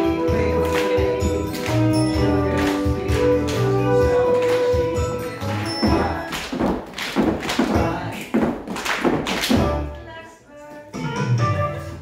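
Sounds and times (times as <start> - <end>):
recorded music: 0.0 - 12.0
dancers' shoes on hard floor: 5.6 - 10.0.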